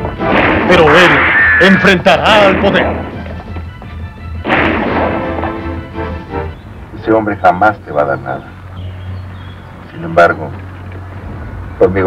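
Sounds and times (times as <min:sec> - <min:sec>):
gunshot: 0:00.2 - 0:03.2, 0:04.4 - 0:05.6.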